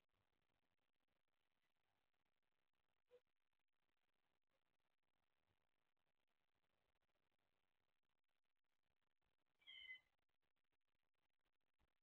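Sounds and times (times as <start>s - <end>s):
high-pitched animal call: 9.6s - 10.1s.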